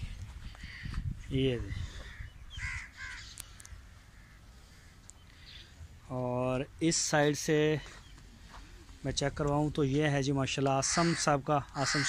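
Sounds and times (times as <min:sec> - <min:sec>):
bird harsh calls: 0:00.0 - 0:05.9, 0:10.8 - 0:12.0.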